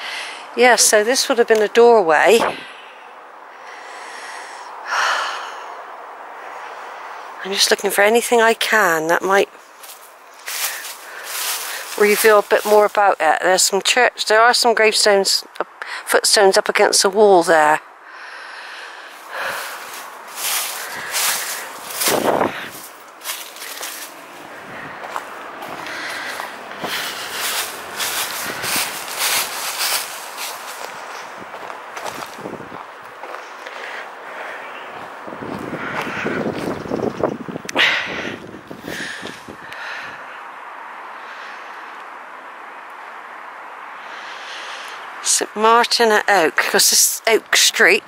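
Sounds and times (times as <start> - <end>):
footsteps on dry leaves: 9.6 - 13.2, 19.1 - 36.8.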